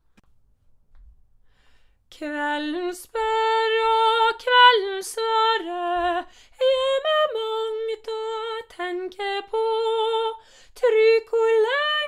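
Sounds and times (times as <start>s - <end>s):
soprano voice singing: 2.1s - 12.0s.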